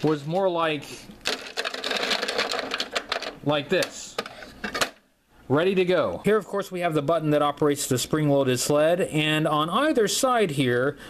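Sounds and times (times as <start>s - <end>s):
plastic figures clattering: 1.2s - 5.0s.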